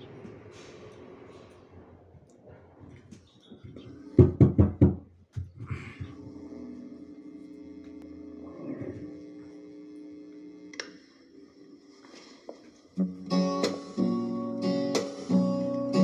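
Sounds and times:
click: 10.7s - 11.0s
sustained musical chord: 13.0s - 16.0s.

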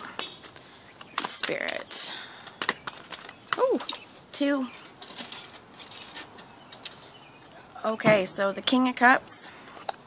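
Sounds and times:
faint rustling: 2.6s - 8.4s
woman speaking: 3.7s - 4.8s, 7.8s - 9.5s.

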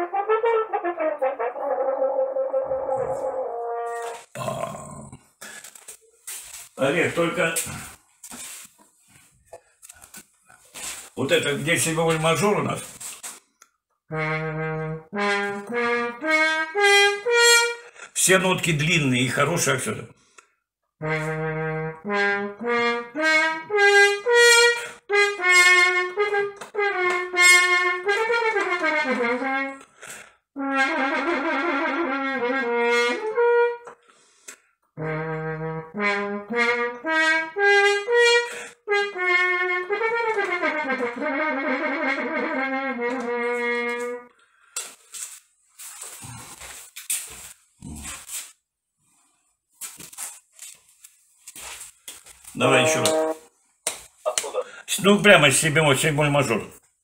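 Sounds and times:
french horn through laptop speaker: 0.0s - 4.6s, 14.1s - 18.0s, 21.0s - 34.0s, 34.9s - 44.4s, 52.5s - 53.6s.

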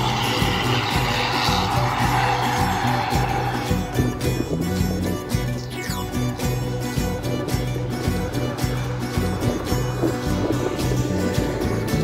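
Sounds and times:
bus passing by: 0.0s - 5.3s, 6.6s - 12.0s
background music with steady beat: 0.0s - 12.0s.

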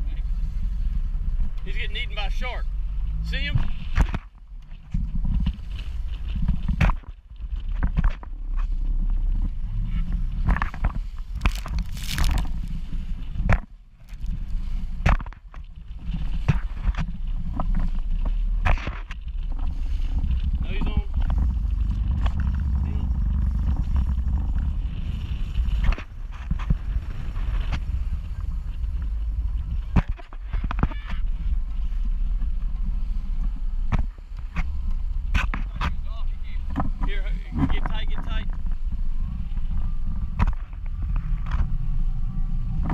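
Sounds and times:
wind buffeting microphone: 2.6s - 42.9s.

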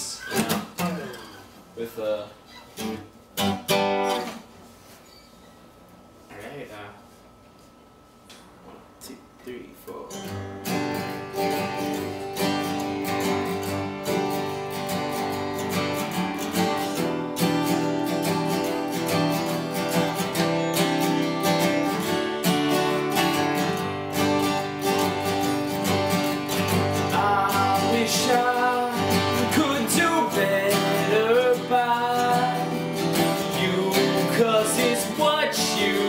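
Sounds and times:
acoustic guitars strumming chords: 0.0s - 1.6s, 2.6s - 4.5s, 10.1s - 36.0s
person singing: 27.0s - 36.0s.

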